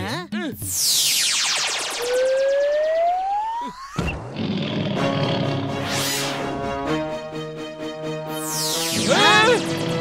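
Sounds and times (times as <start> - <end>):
fast falling whizz: 0.7 - 6.6, 8.3 - 9.6
rising whistle: 0.8 - 4.0.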